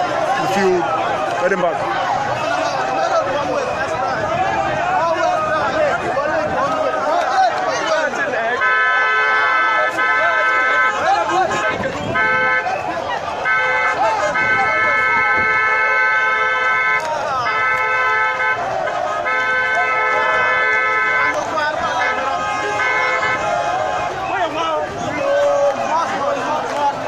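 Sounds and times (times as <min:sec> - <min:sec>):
voices: 0:00.0 - 0:27.0
vehicle horn honking: 0:08.5 - 0:24.4.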